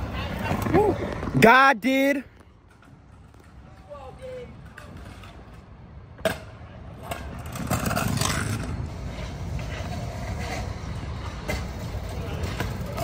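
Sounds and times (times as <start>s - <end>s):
wheels rolling over rough concrete: 2.5s - 13.0s.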